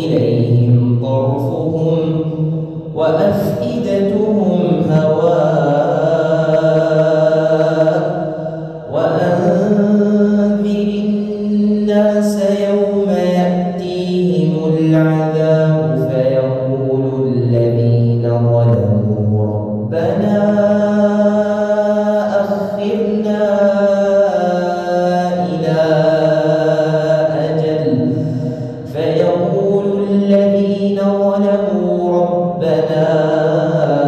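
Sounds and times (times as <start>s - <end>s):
man reciting melodically: 0.0s - 34.0s.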